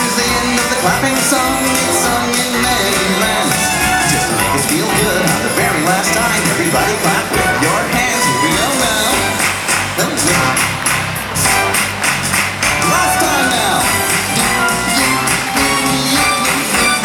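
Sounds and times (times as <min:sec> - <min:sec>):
rhythmic clapping: 0:00.0 - 0:17.0
upbeat children's song: 0:00.0 - 0:17.0.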